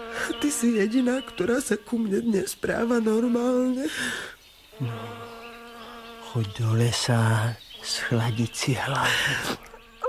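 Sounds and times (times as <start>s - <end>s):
insect buzzing: 0.0s - 10.0s.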